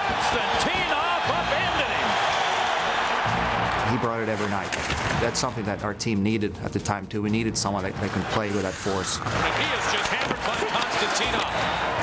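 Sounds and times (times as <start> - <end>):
arena crowd noise: 0.0 - 5.4, 8.5 - 12.0.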